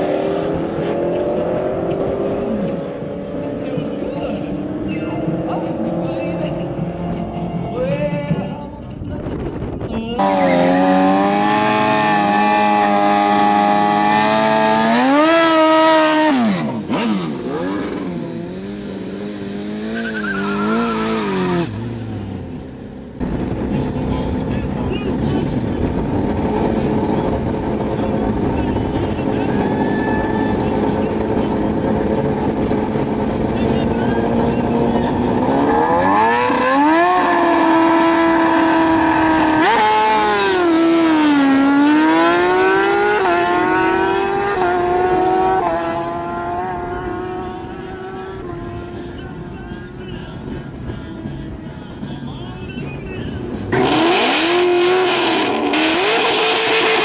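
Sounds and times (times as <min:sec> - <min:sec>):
motorcycle engines revving: 0:00.0 - 0:08.6, 0:10.0 - 0:57.0.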